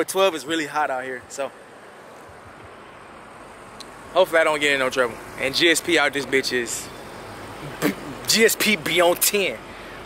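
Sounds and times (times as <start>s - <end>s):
faint outdoor rush: 0.0s - 10.0s.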